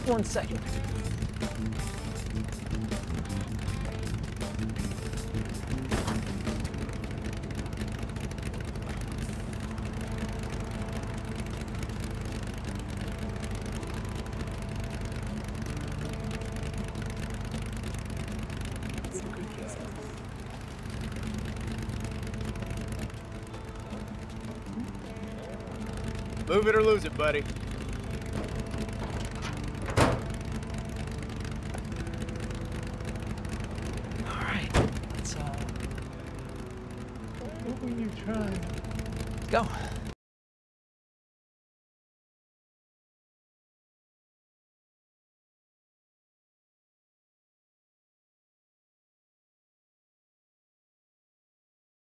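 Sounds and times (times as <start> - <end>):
car engine idling: 0.0 - 40.2
car bodywork slam: 5.9 - 6.4, 29.8 - 30.3, 34.7 - 35.0.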